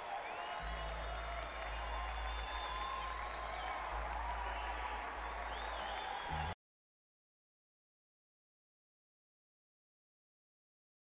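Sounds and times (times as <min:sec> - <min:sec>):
audience applauding: 0:00.0 - 0:06.6
high whistles: 0:00.2 - 0:03.6.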